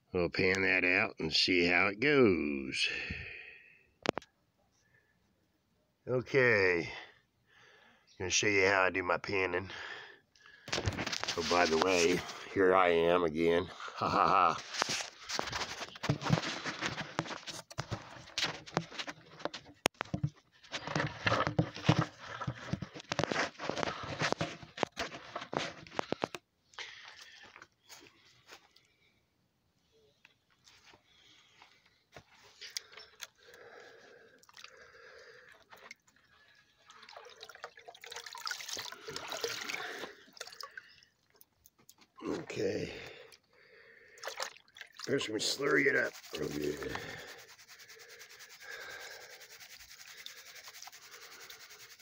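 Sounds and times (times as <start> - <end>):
water splashing in plastic bucket: 15.3 - 26.4, 34.4 - 41.4, 44.1 - 52.0
rustling: 45.1 - 52.0.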